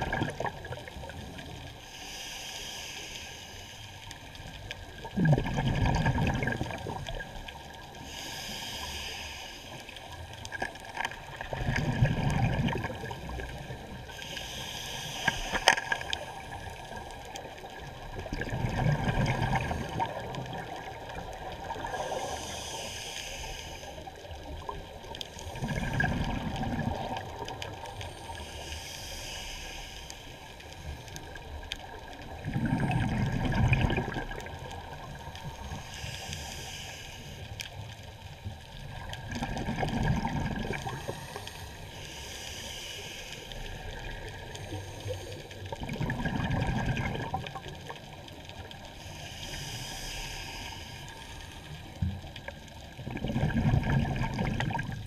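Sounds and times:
exhaled bubbles rushing: 0:00.0 - 0:01.2, 0:05.0 - 0:07.4, 0:11.2 - 0:13.7, 0:17.8 - 0:21.8, 0:25.5 - 0:27.5, 0:32.4 - 0:34.9, 0:38.9 - 0:41.0, 0:45.7 - 0:47.7, 0:53.0 - 0:55.0
diver inhaling through regulator: 0:01.8 - 0:03.9, 0:08.0 - 0:10.0, 0:14.0 - 0:17.0, 0:21.8 - 0:24.2, 0:28.1 - 0:31.1, 0:35.5 - 0:37.6, 0:40.6 - 0:45.5, 0:49.0 - 0:51.9.

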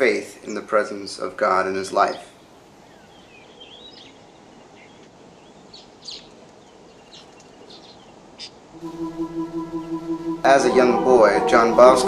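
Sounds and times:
faint outdoor hiss: 0:00.0 - 0:11.9
small birds chirping: 0:02.0 - 0:08.6
held music notes: 0:08.8 - 0:12.0.

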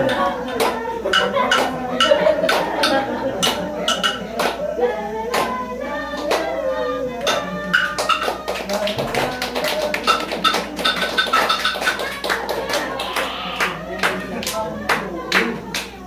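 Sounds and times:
sharp rhythmic hand claps: 0:00.0 - 0:04.7, 0:05.3 - 0:05.6, 0:06.2 - 0:06.6, 0:07.2 - 0:16.0
voices singing: 0:00.0 - 0:16.0
pitched instruments: 0:10.0 - 0:14.0.

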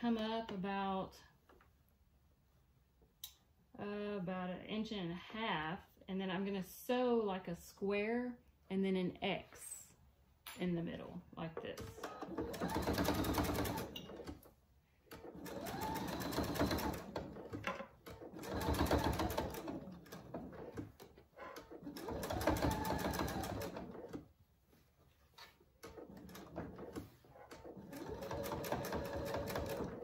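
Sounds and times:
sewing machine stitching: 0:11.8 - 0:14.5, 0:15.1 - 0:24.3, 0:25.4 - 0:30.0.

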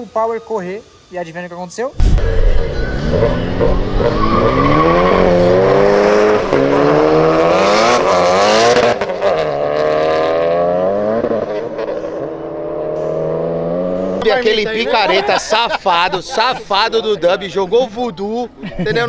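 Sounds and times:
car engine accelerating hard: 0:02.0 - 0:14.2.

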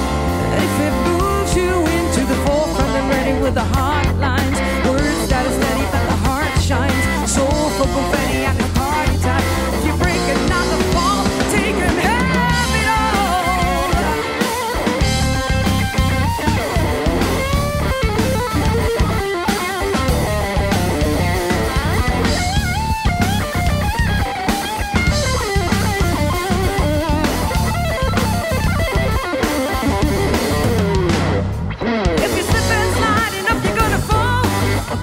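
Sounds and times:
bass guitar: 0:00.0 - 0:35.0
drum kit: 0:00.0 - 0:35.0
electric guitar lead: 0:00.0 - 0:35.0.

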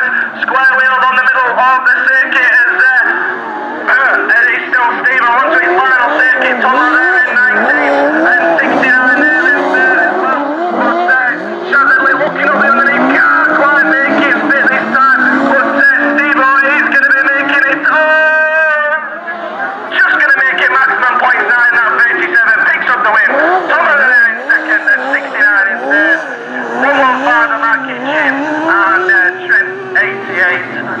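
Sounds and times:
race car engines revving: 0:00.0 - 0:31.0.

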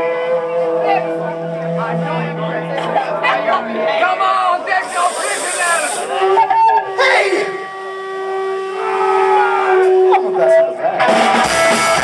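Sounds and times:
electric guitar feedback tone: 0:00.0 - 0:12.0.

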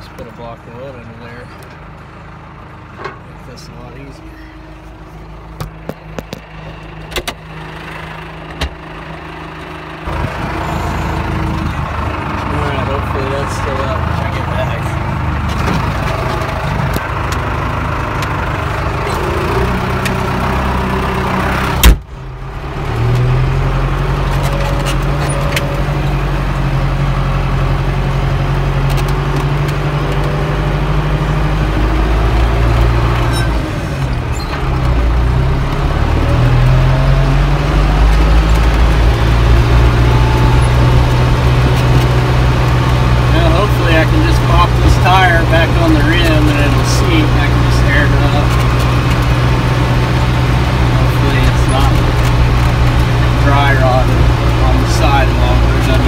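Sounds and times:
tractor engine running: 0:00.0 - 0:56.0.

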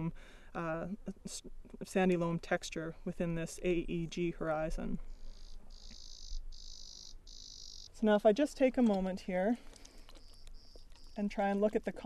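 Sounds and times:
insect trilling: 0:05.2 - 0:08.0, 0:10.1 - 0:11.2.

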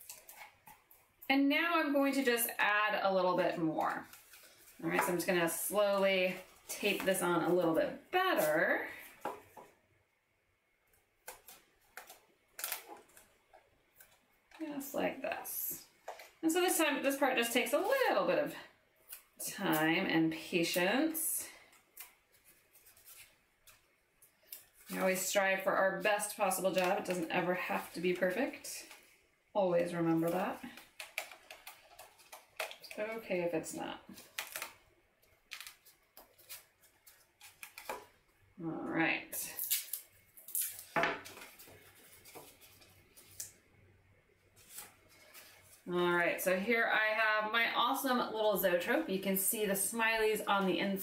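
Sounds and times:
tape and paper crackling: 0:00.0 - 0:01.3, 0:02.0 - 0:09.8, 0:10.9 - 0:15.4, 0:20.7 - 0:38.3, 0:39.5 - 0:43.7, 0:44.4 - 0:46.4.

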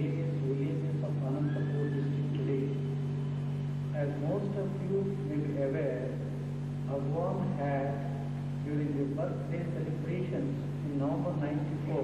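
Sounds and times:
man speaking over public address: 0:00.0 - 0:03.0, 0:03.9 - 0:12.0
steady low hum: 0:00.0 - 0:12.0.

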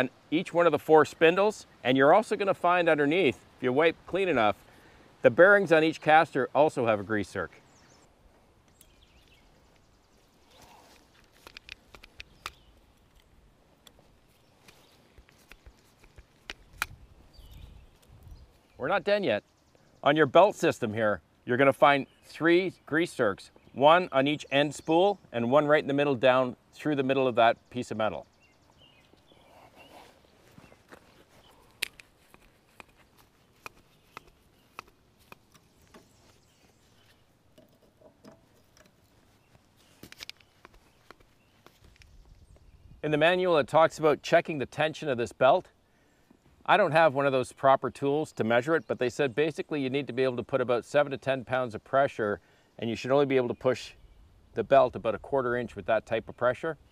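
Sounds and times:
grease gun clicks and knocks: 0:11.2 - 0:13.2.

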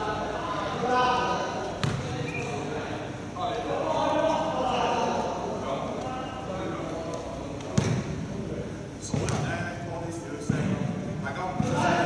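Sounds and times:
basketball bouncing on court floor: 0:01.8 - 0:02.2, 0:07.8 - 0:08.0, 0:09.1 - 0:09.5.

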